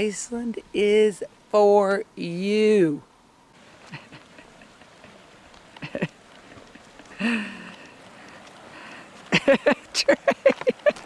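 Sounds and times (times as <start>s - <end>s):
person chuckling: 3.8s - 5.2s, 5.8s - 7.9s, 9.3s - 11.0s.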